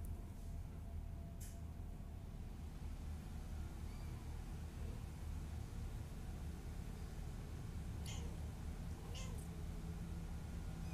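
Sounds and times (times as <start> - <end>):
low steady hum: 0.0 - 10.9
kitten mewing: 9.0 - 9.4.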